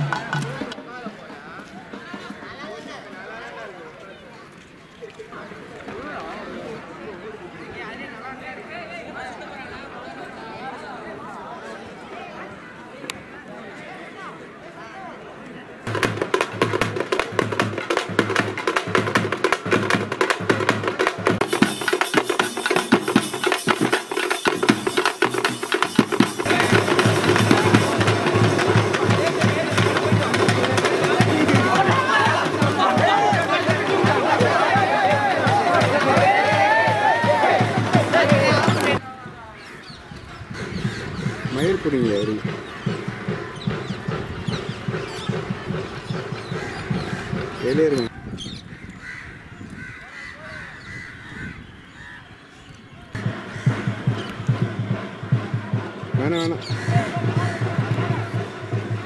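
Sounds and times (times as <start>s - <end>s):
barrel drums struck with sticks: 0.0s - 0.9s, 15.9s - 39.0s
faint calls: 56.1s - 58.5s.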